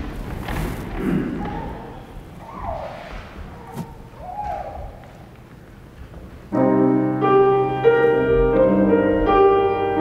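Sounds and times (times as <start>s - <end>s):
chairs thudding and shuffling: 3.1s - 4.2s.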